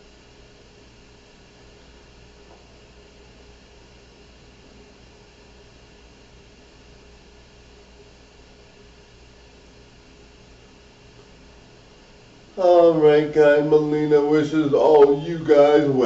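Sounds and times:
faint steady hiss: 0:00.0 - 0:16.0
thin low hum: 0:11.1 - 0:16.0.

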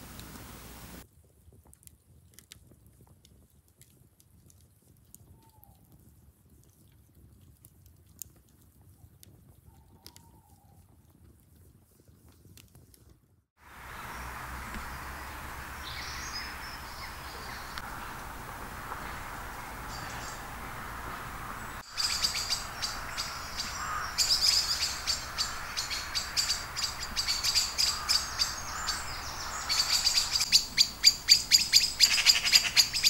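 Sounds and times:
woodland ambience: 0:13.6 - 0:33.0
wood fire crackling: 0:13.7 - 0:31.8
bird call: 0:13.8 - 0:33.0.

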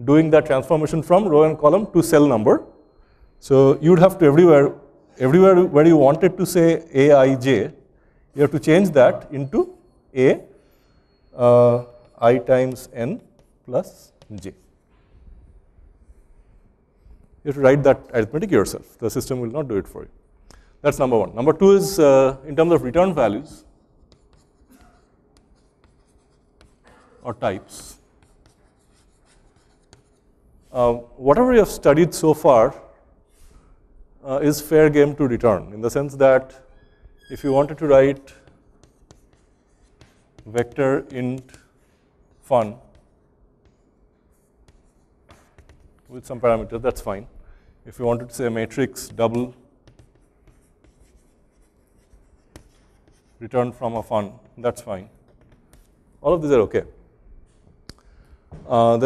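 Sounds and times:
chalk tapping on board: 0:11.8 - 0:14.7, 0:24.0 - 0:30.3, 0:37.5 - 0:47.0, 0:48.1 - 0:56.0
chalk scratching on blackboard: 0:22.6 - 0:31.1, 0:36.4 - 0:47.2, 0:48.0 - 0:56.2.

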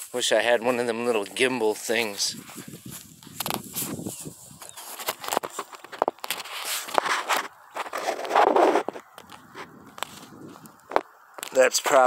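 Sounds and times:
footsteps on dry grass: 0:00.0 - 0:11.7
phone rustling and crackling: 0:02.4 - 0:11.7.

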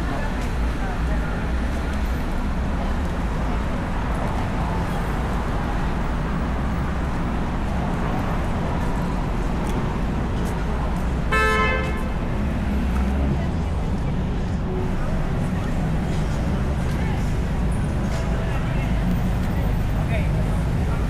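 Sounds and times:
city street traffic rumble: 0:00.0 - 0:21.0
car horn: 0:11.3 - 0:12.2.

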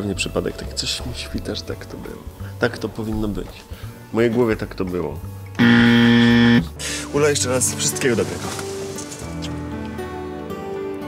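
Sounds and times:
low electronic buzzer: 0:05.6 - 0:06.7.

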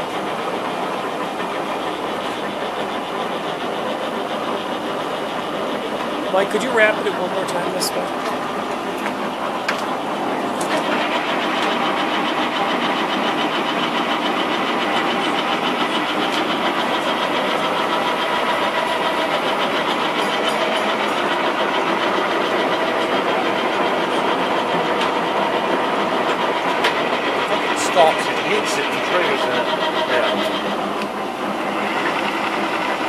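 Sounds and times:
lathe gear whir: 0:00.0 - 0:33.0.

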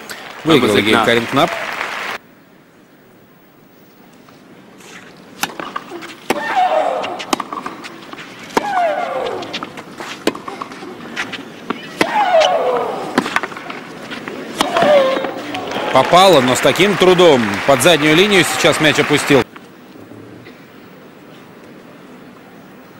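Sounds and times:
tennis racket hitting ball: 0:05.4 - 0:15.5
player shrieking: 0:11.8 - 0:13.1, 0:14.6 - 0:15.5.

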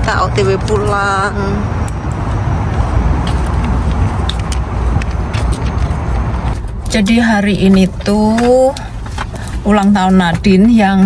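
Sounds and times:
car park and traffic rumble: 0:00.0 - 0:11.0.

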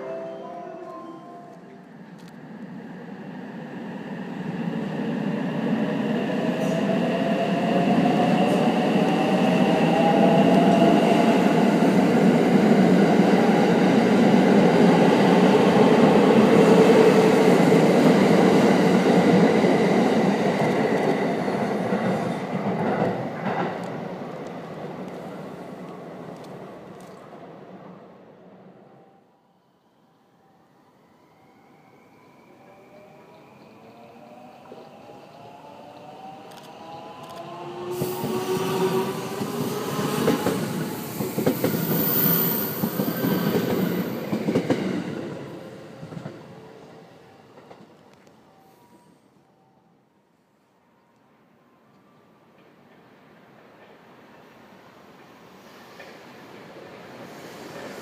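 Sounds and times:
train wheels rumbling on rail: 0:04.6 - 0:27.4, 0:34.6 - 0:46.6.

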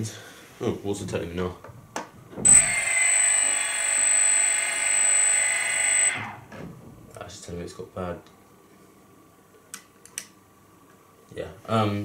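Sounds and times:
high-pitched motor whine: 0:02.5 - 0:06.4.

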